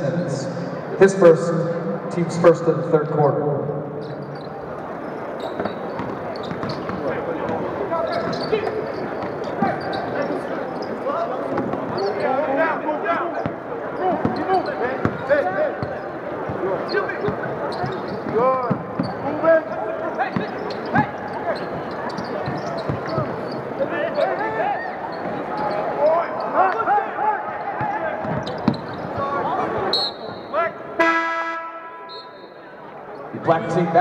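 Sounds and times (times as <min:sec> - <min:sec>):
sneakers squeaking on hardwood: 0:04.0 - 0:12.5, 0:13.4 - 0:26.8, 0:27.5 - 0:29.9
basketball bouncing: 0:05.9 - 0:07.6
short steady horn: 0:31.0 - 0:32.3.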